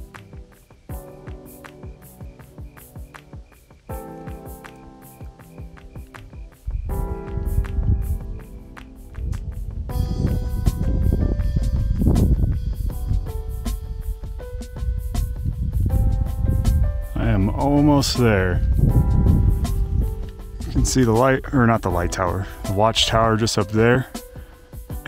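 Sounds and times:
background music with steady beat: 0:00.0 - 0:25.0.

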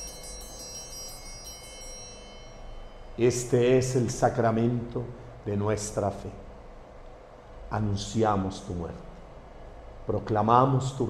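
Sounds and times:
altar chimes ringing: 0:00.0 - 0:04.8.

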